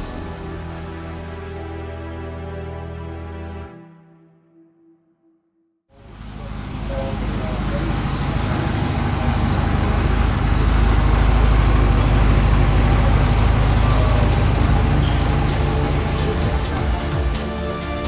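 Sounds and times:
car engine rumbling: 0:06.0 - 0:18.0.

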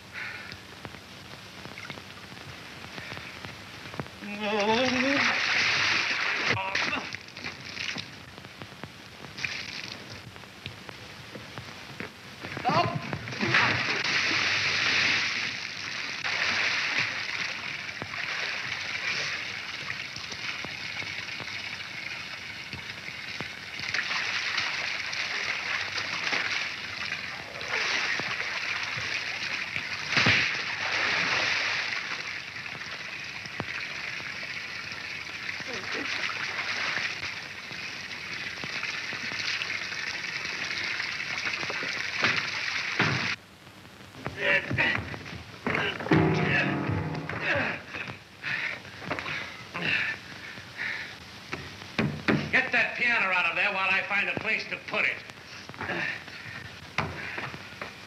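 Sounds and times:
water splashing in fountain pool: 0:01.6 - 0:43.4.

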